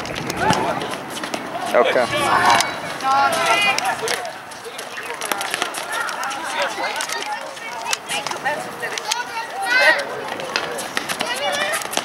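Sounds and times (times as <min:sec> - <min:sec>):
people calling out: 0:00.3 - 0:12.0
loud shout: 0:01.5 - 0:04.4, 0:09.2 - 0:10.3.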